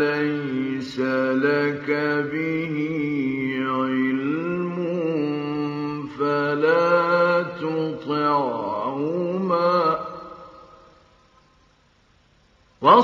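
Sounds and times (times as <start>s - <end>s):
man chanting recitation: 0.0s - 10.6s.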